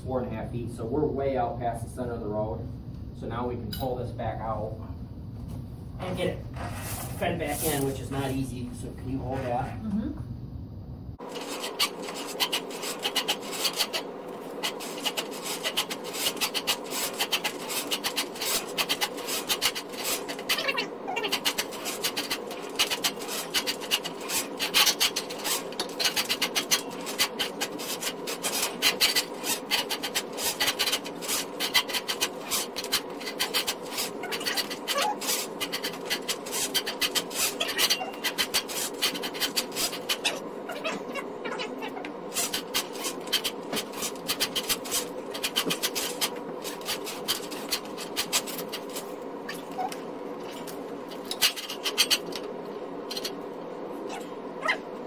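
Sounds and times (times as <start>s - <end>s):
steel cable clattering and scraping: 11.2s - 41.2s, 42.3s - 53.5s.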